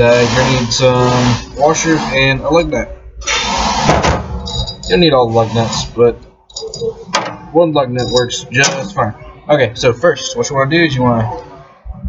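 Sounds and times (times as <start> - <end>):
metal hub scraping and rustling: 0.0 - 9.0.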